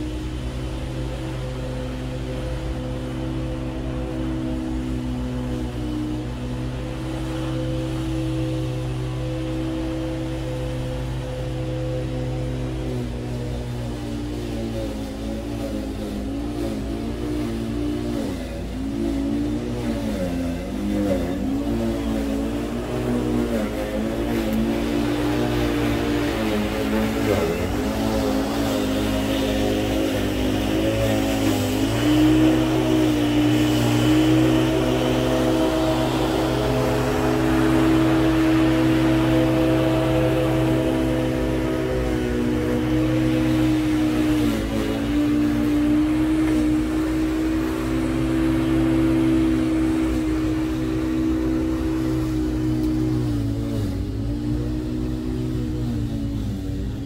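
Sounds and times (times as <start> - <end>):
electric lawn mower running: 0.0 - 57.0.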